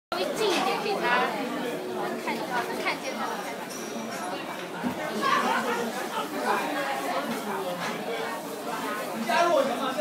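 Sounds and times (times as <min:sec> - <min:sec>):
people chattering in echoing room: 0:00.1 - 0:10.0.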